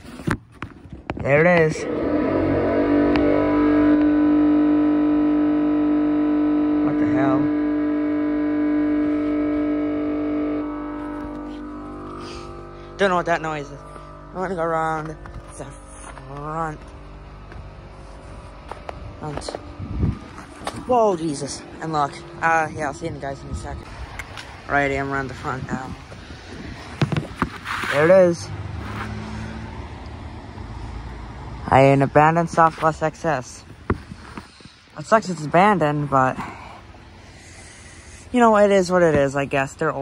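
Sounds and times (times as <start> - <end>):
car engine idling: 0.0 - 40.0
electrical hum with overtones: 0.0 - 40.0
faint tone: 1.5 - 26.0.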